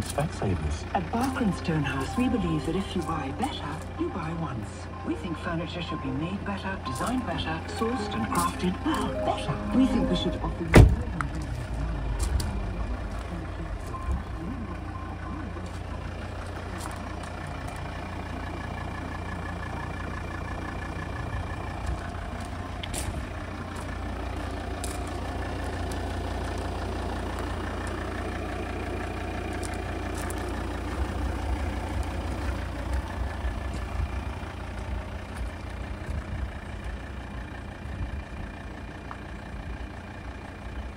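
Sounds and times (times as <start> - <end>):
diesel engine idling: 0.0 - 40.9.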